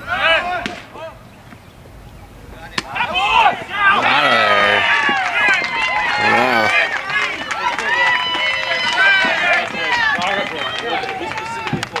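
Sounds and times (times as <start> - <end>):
crowd shouting and calling out: 0.0 - 1.2, 2.7 - 12.0.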